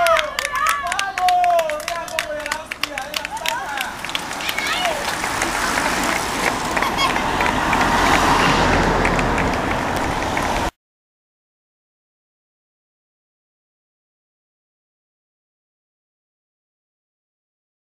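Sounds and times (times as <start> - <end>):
spectators clapping and shouting: 0.0 - 10.7
car driving past: 3.1 - 10.7.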